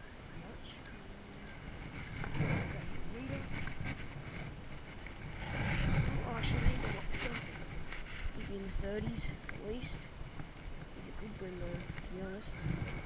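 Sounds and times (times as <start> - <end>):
wind noise on microphone: 0.0 - 13.0
microphone handling rumble: 1.3 - 13.0.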